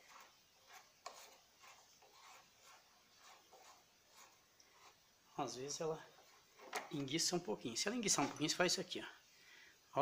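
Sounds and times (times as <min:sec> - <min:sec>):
faint metal rubbing scrapes: 0:00.0 - 0:05.0.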